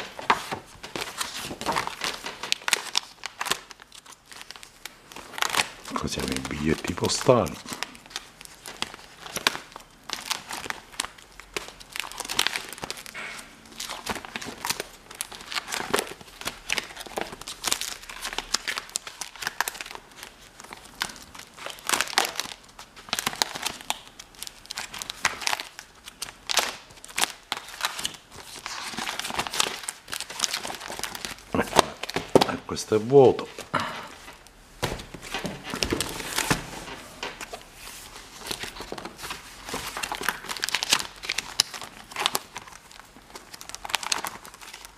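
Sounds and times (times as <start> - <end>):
plastic album pages crinkling: 0.0 - 44.9.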